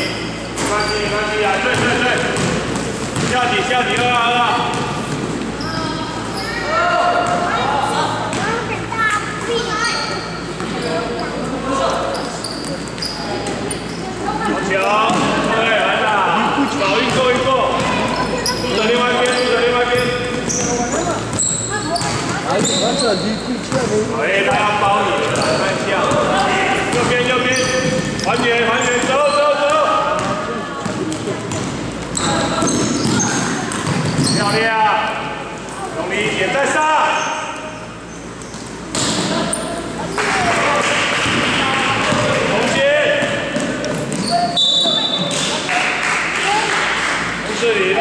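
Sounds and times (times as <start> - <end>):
shoes squeaking: 0.0 - 7.5, 8.3 - 15.4, 16.6 - 24.1, 25.0 - 34.7, 42.1 - 45.7
basketball bouncing on wooden floor: 1.7 - 4.1, 30.2 - 34.4, 42.1 - 44.4.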